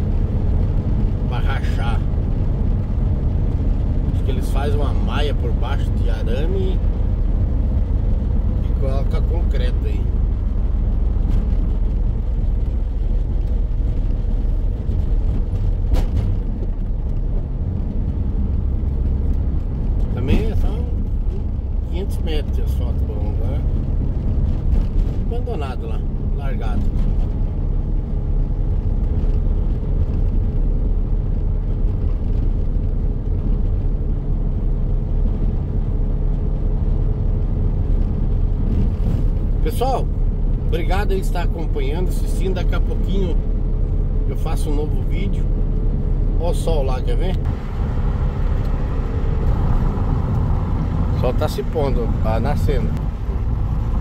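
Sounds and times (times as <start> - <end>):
van engine and tyres droning: 0.0 - 54.0.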